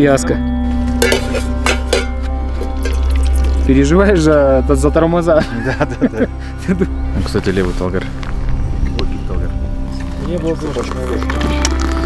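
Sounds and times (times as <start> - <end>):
background music: 0.0 - 12.0
metal clinks of kettle lid: 1.0 - 2.2.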